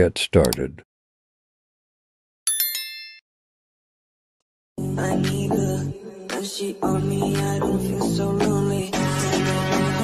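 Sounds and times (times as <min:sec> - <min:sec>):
bell-like chime: 0:02.5 - 0:03.2.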